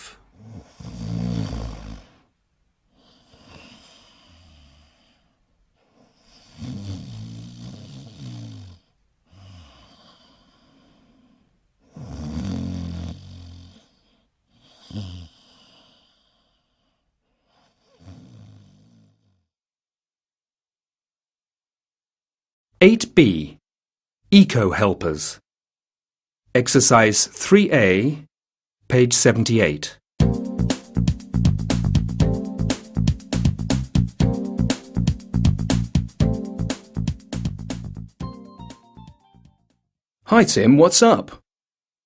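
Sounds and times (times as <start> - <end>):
person snoring: 0.0 - 2.3, 3.0 - 16.8, 17.4 - 19.5.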